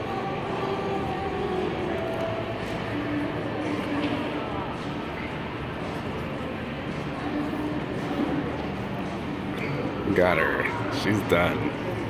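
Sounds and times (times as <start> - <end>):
shopping mall hubbub: 0.0 - 12.0.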